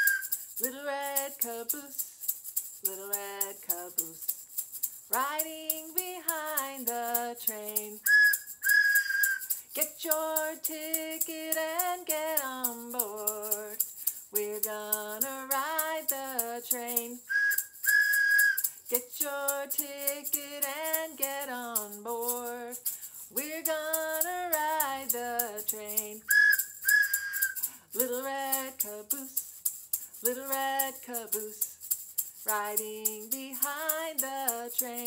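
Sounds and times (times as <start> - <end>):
woman singing children's song: 0.0 - 2.2, 2.8 - 4.3, 5.1 - 8.1, 9.7 - 17.3, 18.9 - 26.3, 27.8 - 29.4, 30.1 - 31.8, 32.4 - 35.0
egg shaker rhythm: 0.0 - 35.0
train whistle toots: 17.3 - 18.6.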